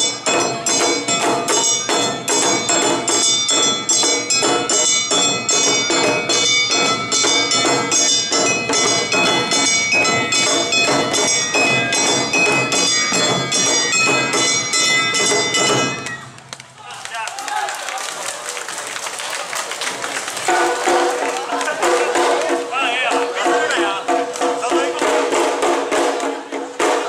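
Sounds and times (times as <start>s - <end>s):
drums beaten in steady rhythm: 0.0s - 16.4s, 20.4s - 27.0s.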